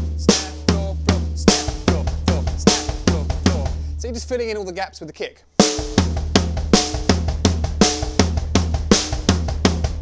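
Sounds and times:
drum strokes: 0:00.0 - 0:04.6, 0:05.6 - 0:10.0
kick drum: 0:00.7 - 0:03.8, 0:05.8 - 0:10.0.

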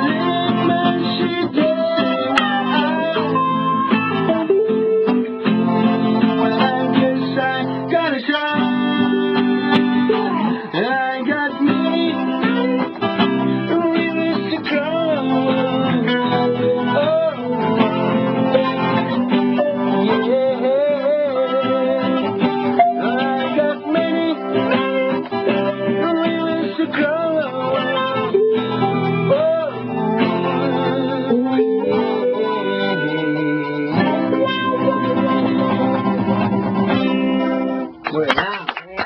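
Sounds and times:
man singing reggae with vibrato: 0:00.0 - 0:36.9
strummed acoustic guitar: 0:00.0 - 0:38.3.

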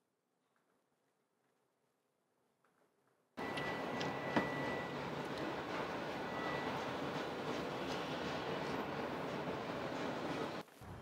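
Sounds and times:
distant city traffic and wind: 0:03.4 - 0:11.0.

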